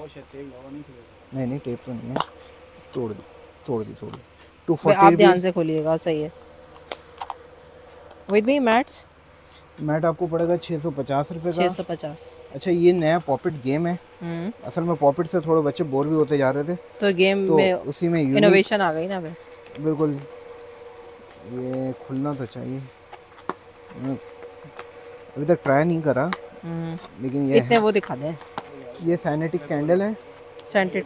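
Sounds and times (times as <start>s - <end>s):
man talking: 0.0s - 2.2s, 2.9s - 5.4s, 9.8s - 11.8s, 12.5s - 14.0s, 14.6s - 18.6s, 19.8s - 20.3s, 21.4s - 22.9s, 23.9s - 24.2s, 25.4s - 26.4s, 27.2s - 27.8s, 28.7s - 30.2s
steady high-pitched hum: 0.0s - 31.0s.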